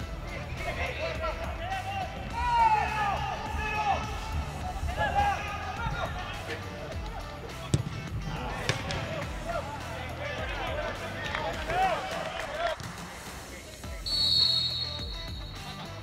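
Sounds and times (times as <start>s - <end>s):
football players shouting: 0.4s - 12.9s
ball being kicked: 7.7s - 8.0s.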